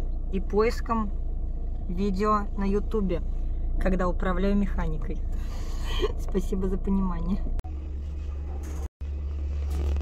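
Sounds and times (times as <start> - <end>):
car cabin rumble while driving: 0.0 - 10.0.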